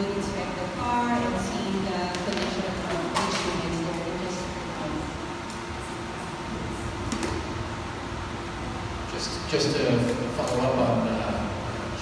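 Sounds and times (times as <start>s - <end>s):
room noise hum: 0.0s - 12.0s.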